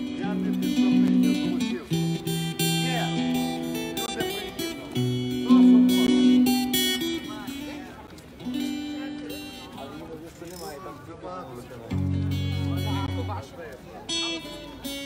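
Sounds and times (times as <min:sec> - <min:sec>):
amplified acoustic guitar: 0:00.0 - 0:15.0
people's voices: 0:00.0 - 0:15.0.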